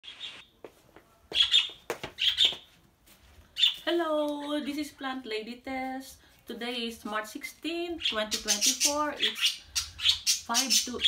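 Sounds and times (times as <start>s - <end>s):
birds chirping: 0.0s - 0.6s, 1.3s - 2.7s, 3.5s - 4.7s, 7.9s - 11.0s.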